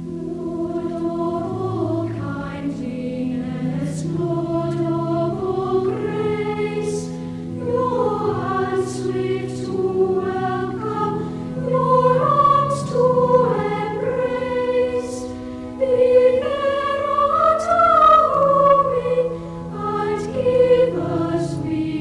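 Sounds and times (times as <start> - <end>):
choir singing sustained chords: 0.0 - 22.0.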